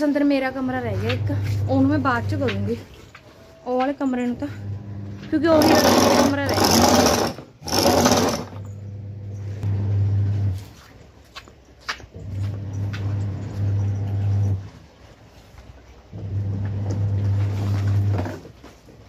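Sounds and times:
washing machine motor humming: 0:00.6 - 0:02.9, 0:04.2 - 0:10.6, 0:12.2 - 0:14.8, 0:16.1 - 0:18.4.

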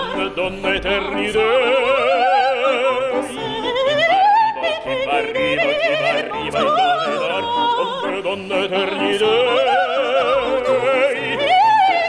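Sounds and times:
opera duet singing: 0:00.0 - 0:12.0
piano accompaniment: 0:00.0 - 0:12.0.

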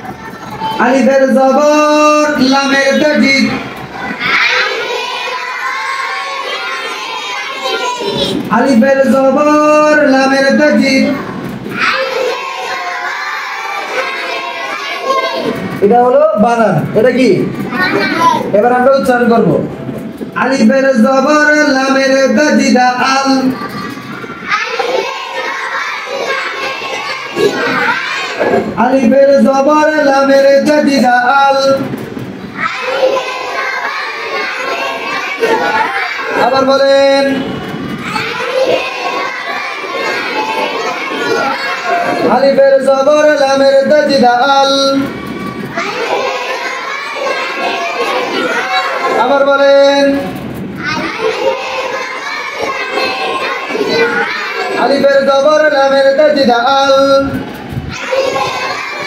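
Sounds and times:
children reciting in chorus: 0:00.0 - 0:15.9, 0:17.4 - 0:18.6, 0:21.2 - 0:30.9, 0:31.6 - 0:59.0
teacher speaking: 0:00.0 - 0:32.0, 0:32.6 - 0:59.0.

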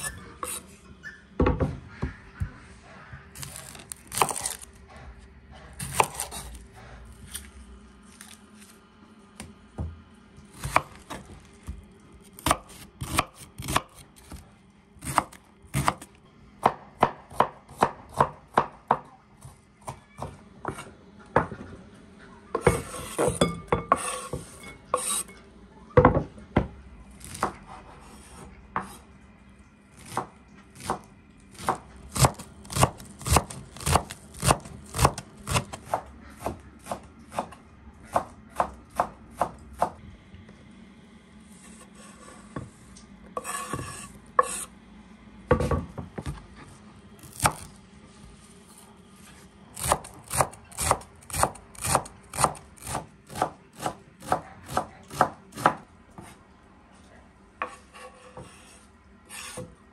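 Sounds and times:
scraping on cutting board: 0:00.0 - 0:00.8, 0:02.9 - 0:07.6, 0:22.6 - 0:25.4, 0:41.5 - 0:42.8, 0:43.4 - 0:44.7, 0:57.6 - 0:59.8
knife chopping on wooden board: 0:05.6 - 0:06.6, 0:12.4 - 0:14.4, 0:15.0 - 0:16.0, 0:16.6 - 0:19.0, 0:31.6 - 0:40.0, 0:49.8 - 0:56.3.

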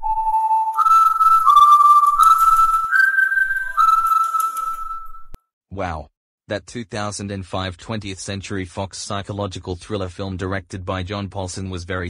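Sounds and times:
whistled tune: 0:00.0 - 0:05.4.

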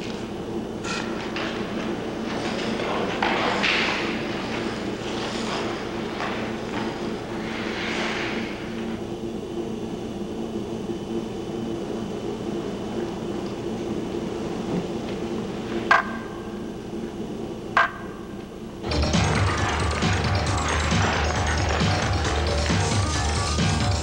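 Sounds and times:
ice skates swishing: 0:01.0 - 0:09.0.

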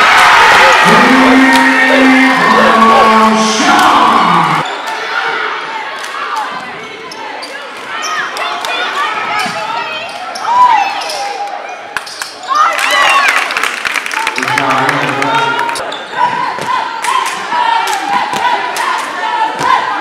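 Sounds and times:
gym crowd noise: 0:00.0 - 0:20.0
held voice tones: 0:00.8 - 0:04.6.

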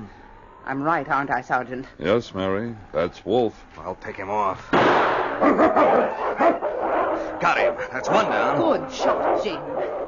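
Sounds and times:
rifle shot: 0:04.7 - 0:05.5
canine yelps and cries: 0:05.4 - 0:10.0.

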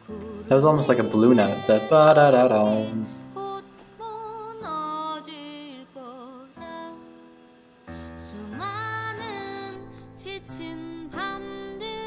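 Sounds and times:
soft accompaniment: 0:00.0 - 0:12.0
woman singing a slow ballad: 0:00.0 - 0:12.0.

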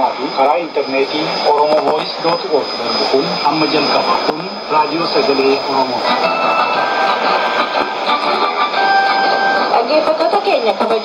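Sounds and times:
loud steady jamming hiss: 0:00.0 - 0:11.0.

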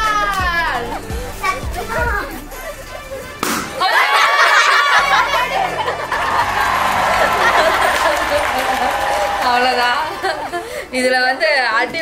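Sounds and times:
people shouting and cheering: 0:00.0 - 0:10.6.

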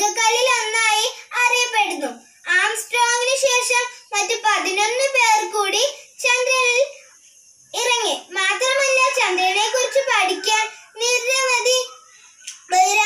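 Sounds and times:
girl singing unaccompanied: 0:12.5 - 0:13.0.

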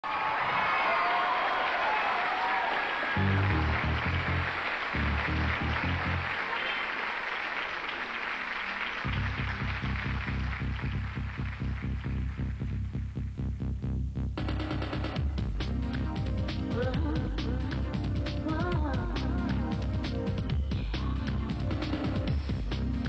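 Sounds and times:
crowd applauding and cheering: 0:00.0 - 0:13.1
pulsing bass beat: 0:03.2 - 0:06.3, 0:09.1 - 0:23.0
deep bass notes: 0:03.2 - 0:06.4, 0:09.0 - 0:23.0
live electronic pop music: 0:14.9 - 0:23.0.

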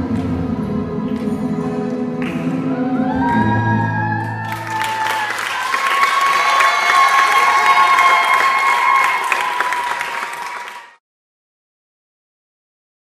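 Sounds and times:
audience applause: 0:03.0 - 0:11.0.

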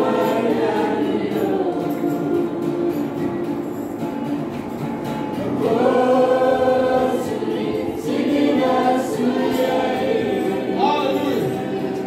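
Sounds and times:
youth choir singing: 0:00.0 - 0:03.9, 0:05.4 - 0:12.0.

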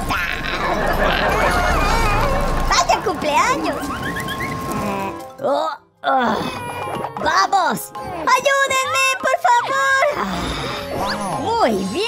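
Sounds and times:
comic voice cries sliding in pitch: 0:00.1 - 0:02.6.

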